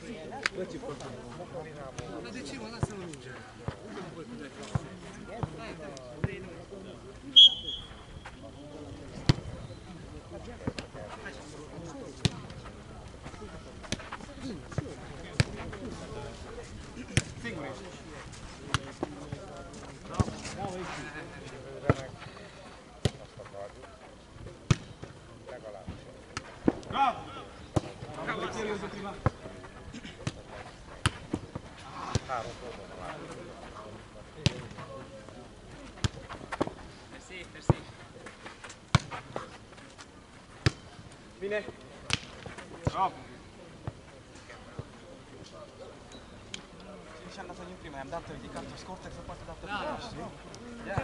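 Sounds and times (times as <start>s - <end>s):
faint voices of players: 0.0s - 51.0s.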